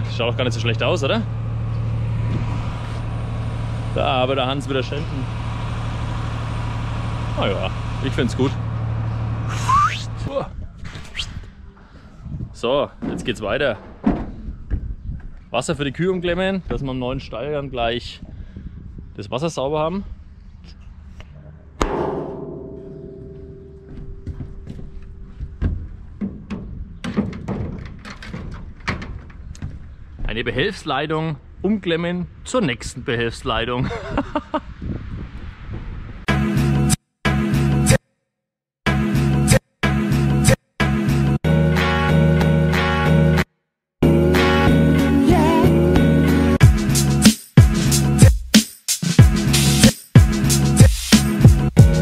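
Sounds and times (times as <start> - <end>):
engine droning: 0.0 - 10.3
metallic clang ringing: 21.8 - 26.7.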